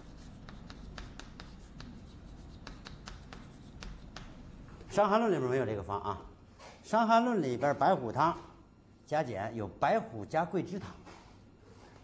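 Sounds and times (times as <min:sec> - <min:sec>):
chalk tapping on blackboard: 0:00.0 - 0:04.4.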